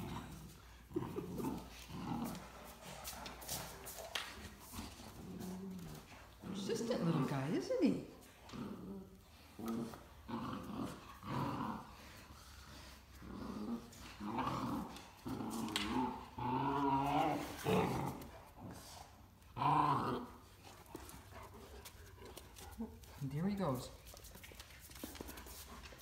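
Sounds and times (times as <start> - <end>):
dogs growling in play: 0.0 - 26.0.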